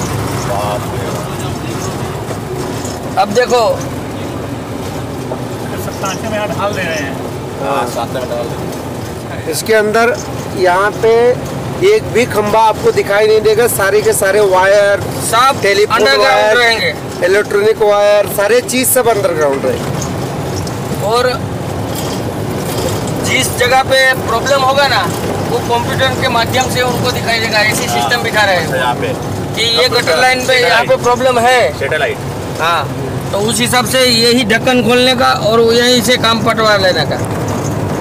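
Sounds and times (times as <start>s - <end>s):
vehicle engine and road rumble: 0.0s - 38.0s.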